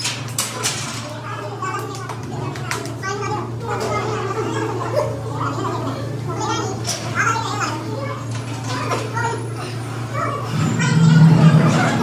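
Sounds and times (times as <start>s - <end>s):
low hum: 10.4s - 12.0s.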